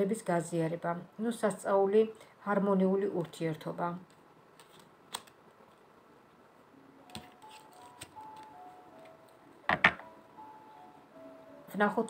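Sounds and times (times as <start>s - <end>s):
faint slow background music: 0.0s - 3.3s, 6.5s - 12.0s
cards being shuffled: 4.5s - 5.8s, 7.1s - 8.5s.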